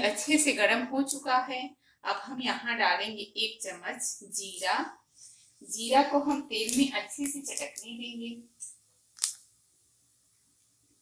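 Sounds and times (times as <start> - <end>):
seed popping in hot oil: 9.0 - 9.5.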